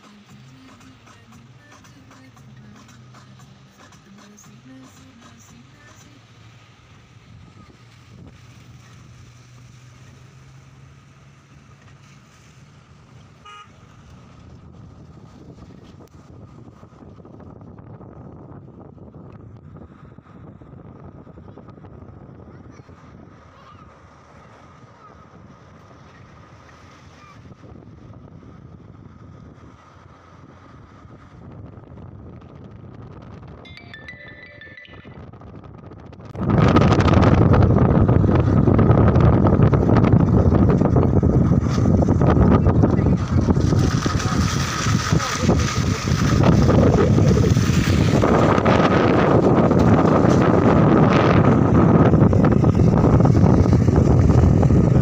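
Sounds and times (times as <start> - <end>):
road and engine noise: 0.0 - 55.0
wind buffeting microphone: 6.9 - 10.8, 12.8 - 23.6, 24.8 - 33.7, 35.1 - 55.0.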